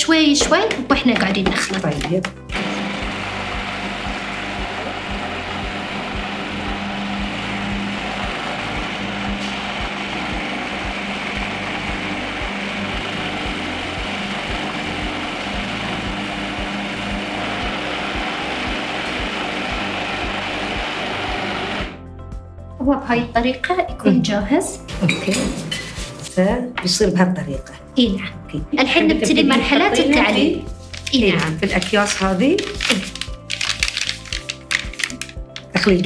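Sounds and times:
food processor motor running: 0:02.5 - 0:22.0, 0:31.1 - 0:36.0.

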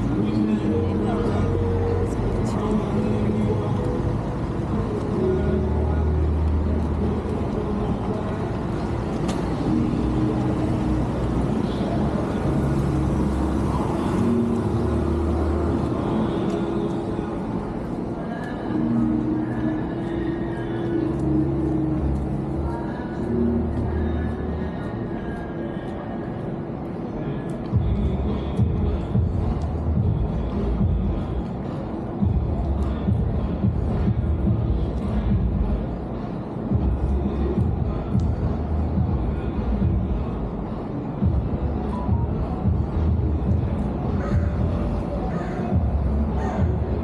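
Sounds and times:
background music: 0:00.0 - 0:47.0
car traffic: 0:00.0 - 0:47.0
indistinct voices: 0:00.0 - 0:47.0.

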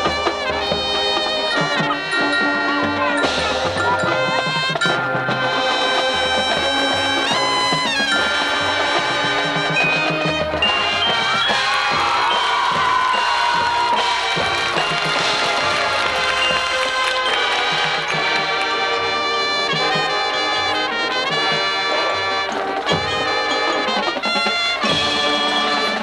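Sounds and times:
brass melody: 0:00.0 - 0:26.0
drumline and percussion: 0:00.0 - 0:26.0
marching band playing: 0:00.0 - 0:26.0.

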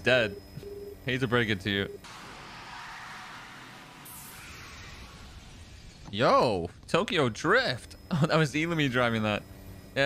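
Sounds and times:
cartoon car speeding rush: 0:02.1 - 0:06.0.

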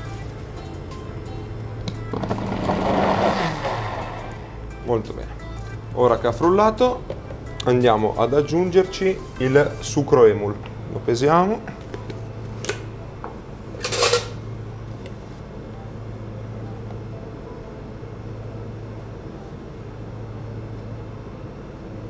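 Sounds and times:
kitchen ventilation hum: 0:00.0 - 0:22.0.

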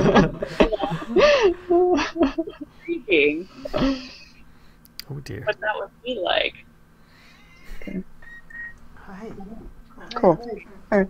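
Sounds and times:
woman laughing: 0:00.0 - 0:04.4.

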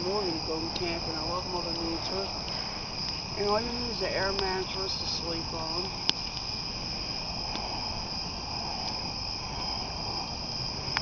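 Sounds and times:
campfire crackling and popping: 0:00.0 - 0:03.5, 0:05.4 - 0:11.0
crickets chirping: 0:00.0 - 0:11.0.

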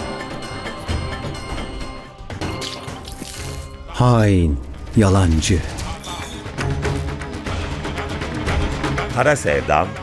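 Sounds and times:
dramatic music: 0:00.0 - 0:10.0.

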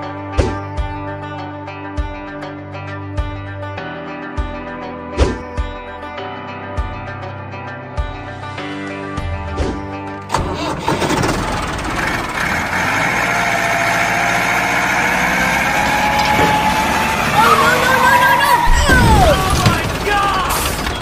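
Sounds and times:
background music: 0:00.0 - 0:21.0
tractor engine running: 0:10.2 - 0:21.0.

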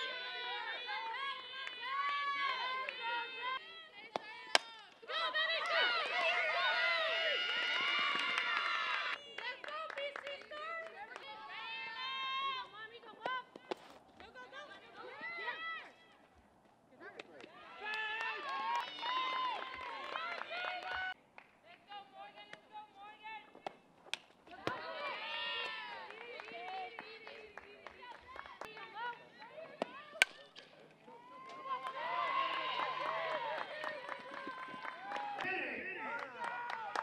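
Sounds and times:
young women shouting and chanting: 0:00.0 - 0:16.2, 0:17.5 - 0:21.2, 0:24.5 - 0:30.5.

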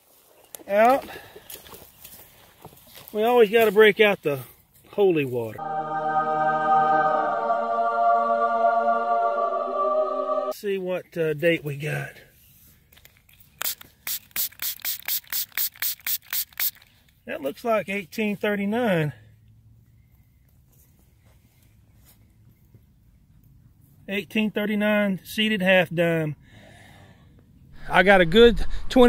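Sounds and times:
spray bottle squirting water: 0:13.6 - 0:16.9.

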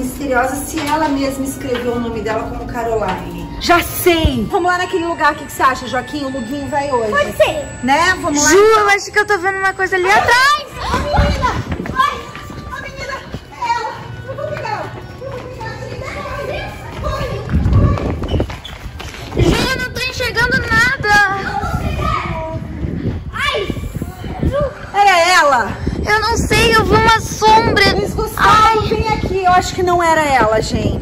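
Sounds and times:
background music: 0:00.0 - 0:17.5
children shrieking and yelling: 0:09.9 - 0:14.1, 0:19.6 - 0:25.3.

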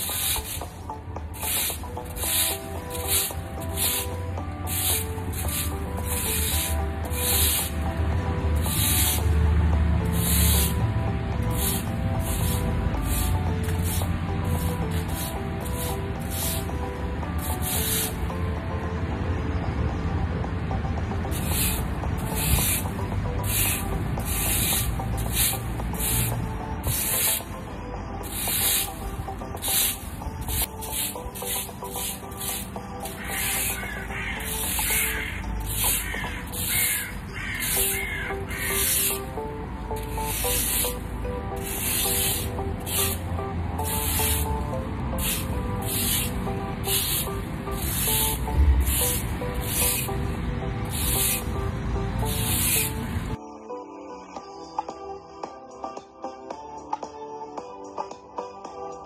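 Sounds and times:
rake scraping gravel: 0:00.0 - 0:18.3, 0:21.3 - 0:27.6, 0:28.2 - 0:53.4
background music: 0:00.0 - 0:59.0.

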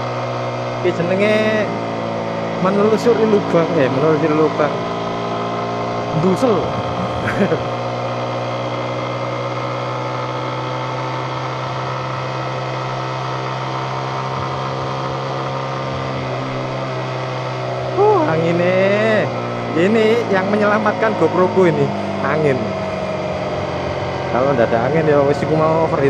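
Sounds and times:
motorcycle engine idling: 0:00.0 - 0:26.0
person speaking: 0:00.8 - 0:01.8, 0:02.6 - 0:04.8, 0:06.0 - 0:07.8, 0:17.9 - 0:23.0.

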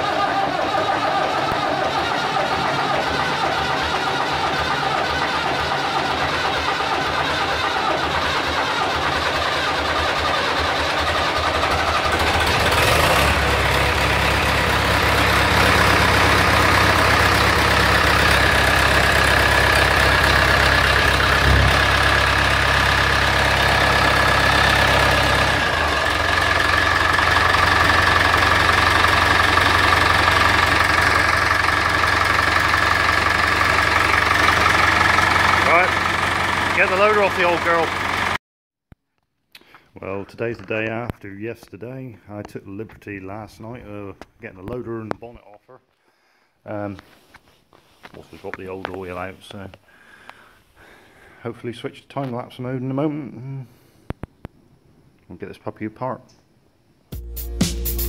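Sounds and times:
diesel tractor engine running: 0:00.0 - 0:38.4.

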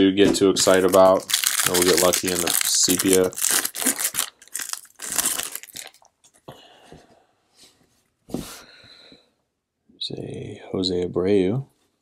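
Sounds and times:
cards rustling: 0:00.6 - 0:06.0
foil wrapper crinkling: 0:00.6 - 0:06.1.

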